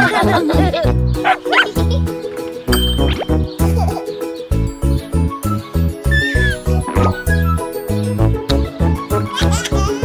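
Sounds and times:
children's song backing music: 0:00.0 - 0:10.0
cartoon puppy barking and yipping: 0:01.2 - 0:02.1.

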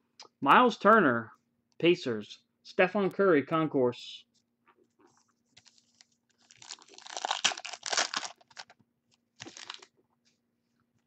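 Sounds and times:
card pack wrapper crinkling and tearing: 0:05.6 - 0:08.8, 0:09.4 - 0:09.9.

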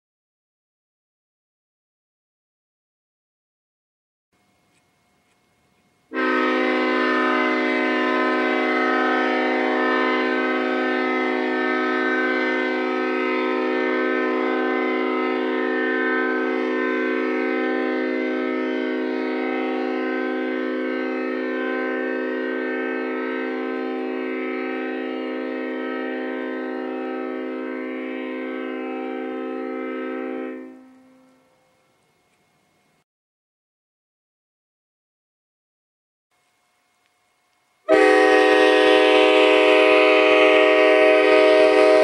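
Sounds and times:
locomotive air horn chord: 0:06.1 - 0:31.9, 0:37.8 - 0:42.0.

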